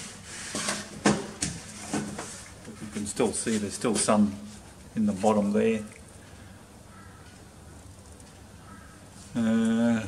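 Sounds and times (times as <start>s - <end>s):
faint workshop room noise: 0.0s - 10.0s.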